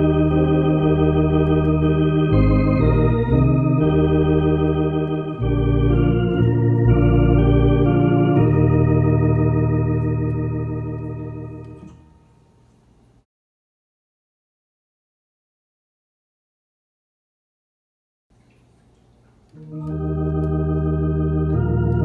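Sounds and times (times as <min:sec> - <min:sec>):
electronic organ playing hymn chords: 0:00.0 - 0:12.3, 0:19.6 - 0:22.0.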